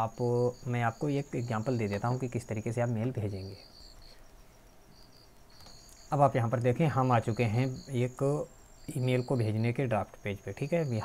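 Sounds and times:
high-pitched insect chirps: 0:00.0 - 0:11.0.

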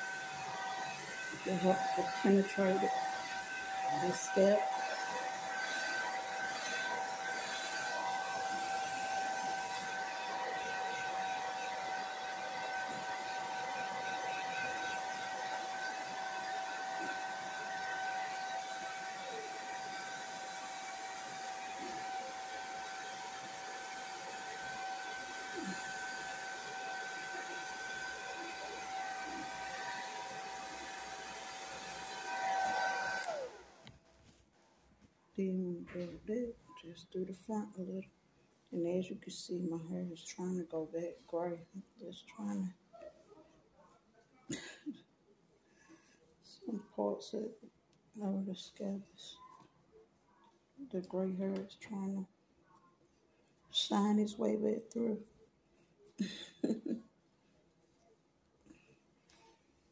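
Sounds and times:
hair dryer running: 0:00.0 - 0:34.0, 0:44.5 - 0:45.0, 0:56.2 - 0:57.0.

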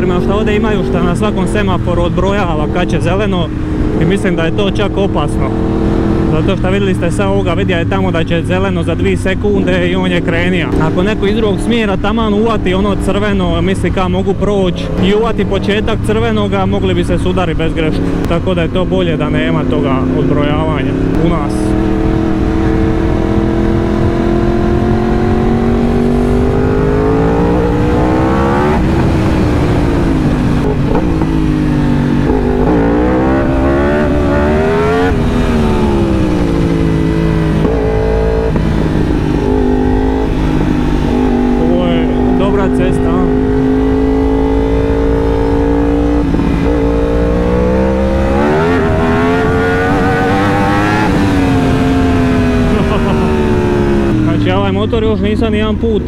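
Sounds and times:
motorcycle engine revving: 0:00.0 - 0:56.0
wind rush: 0:20.9 - 0:54.6.

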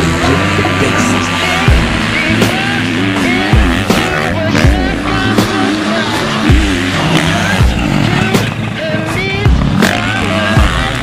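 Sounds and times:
dirt bike engine revving: 0:00.0 - 0:11.0
music with bass beat: 0:00.0 - 0:11.0.

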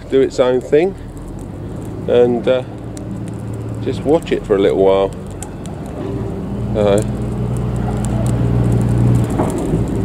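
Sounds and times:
faint crackling of burning straw: 0:00.0 - 0:10.0
low engine hum: 0:00.0 - 0:10.0.

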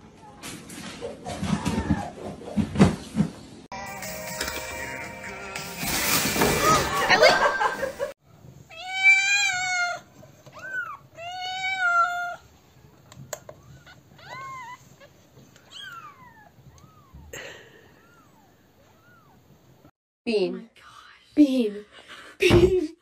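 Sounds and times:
kitten meowing: 0:13.7 - 0:17.3.

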